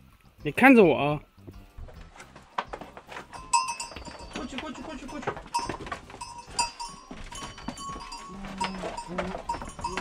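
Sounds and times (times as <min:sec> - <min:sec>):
goat hooves on wooden boards: 0:01.4 - 0:10.0.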